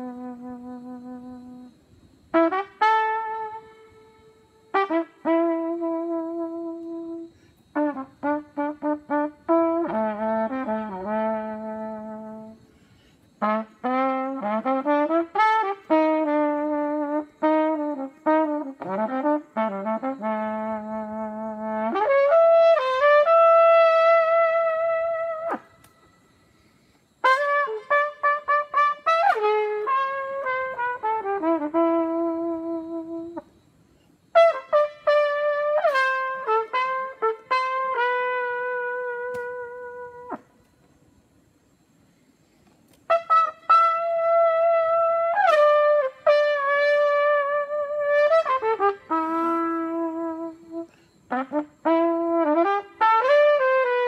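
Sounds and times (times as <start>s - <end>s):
solo trumpet melody: 0.0s - 12.7s, 13.4s - 33.5s, 34.3s - 40.8s, 43.0s - 54.0s.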